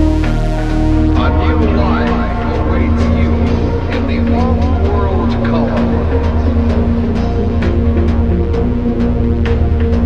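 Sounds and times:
gliding synth line: 0:00.0 - 0:10.0
low drone: 0:00.0 - 0:10.0
pulsing bass: 0:00.0 - 0:10.0.

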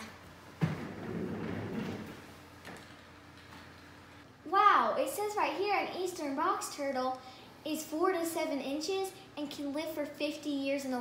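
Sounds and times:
office chair casters rolling: 0:00.6 - 0:04.2.

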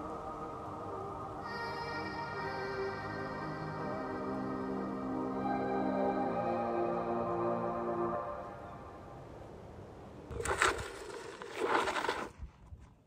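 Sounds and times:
ambient synth music: 0:00.0 - 0:09.6.

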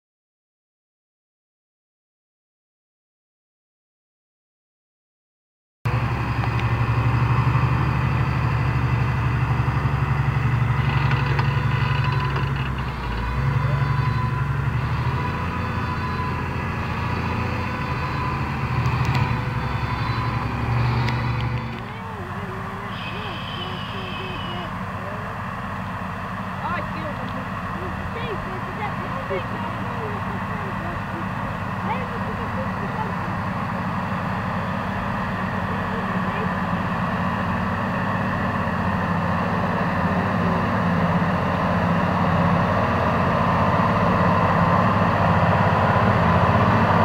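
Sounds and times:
tractor diesel engine droning: 0:05.9 - 0:47.0.

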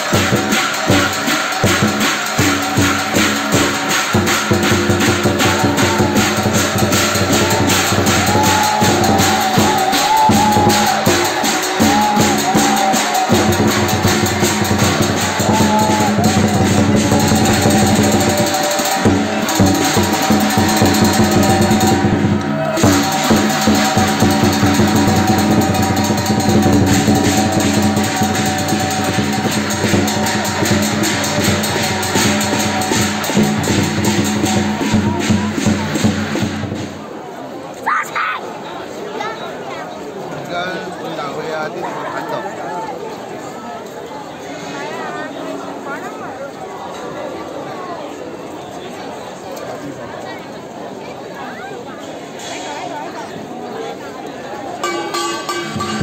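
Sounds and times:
drum cymbal and gong percussion: 0:00.0 - 0:37.2, 0:54.8 - 0:56.0.

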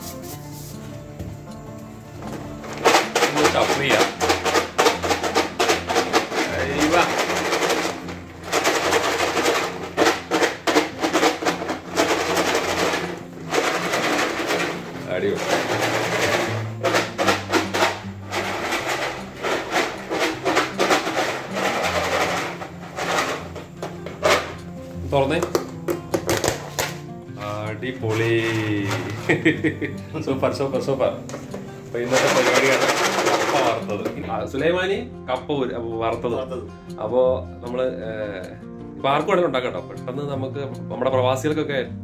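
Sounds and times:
chips rattling in shaken bowl: 0:02.8 - 0:23.6, 0:32.0 - 0:33.9.

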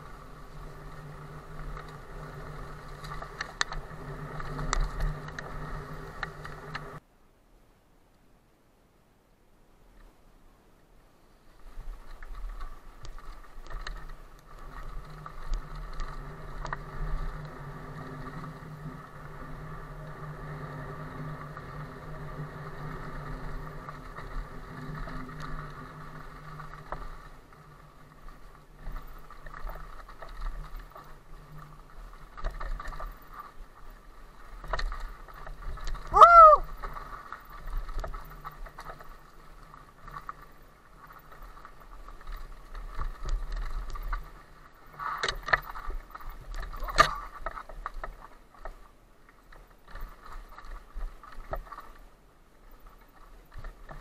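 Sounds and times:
electric bike whirring: 0:00.0 - 0:07.1, 0:11.2 - 0:54.0
bike rattles and knocks: 0:22.6 - 0:36.1, 0:36.7 - 0:52.1.

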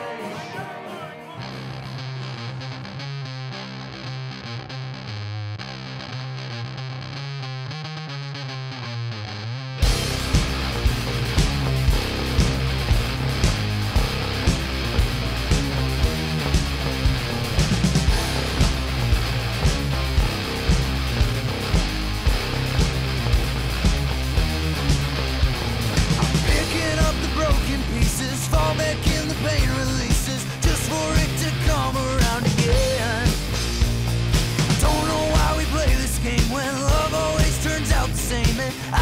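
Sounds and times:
distorted electric guitar: 0:00.0 - 0:39.0
rock band with drums: 0:09.8 - 0:39.0.

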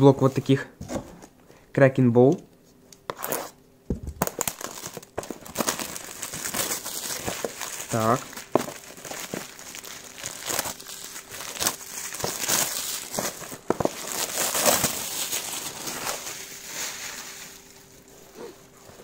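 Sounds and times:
plastic wrapping crinkling: 0:04.1 - 0:19.0.

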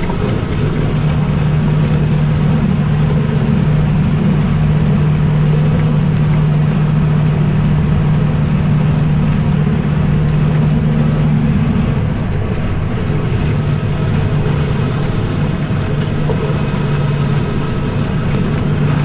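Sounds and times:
tractor engine running under load: 0:00.0 - 0:19.0.

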